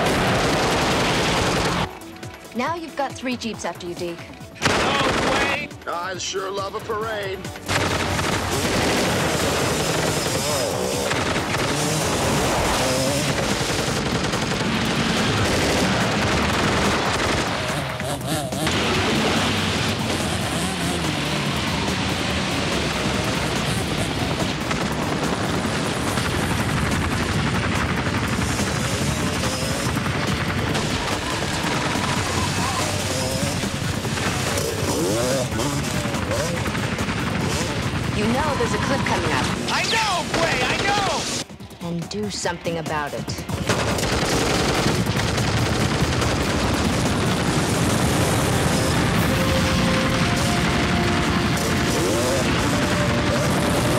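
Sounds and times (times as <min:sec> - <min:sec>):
automatic gunfire: 0:00.0 - 0:02.0, 0:04.6 - 0:05.7, 0:07.6 - 0:41.4, 0:43.4 - 0:53.9
film music score: 0:00.0 - 0:53.9.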